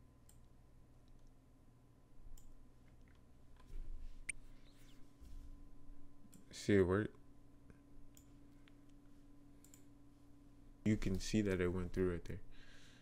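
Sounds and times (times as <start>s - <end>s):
faint steady hum: 0.0s - 13.0s
faint computer mouse clicks: 9.6s - 9.9s.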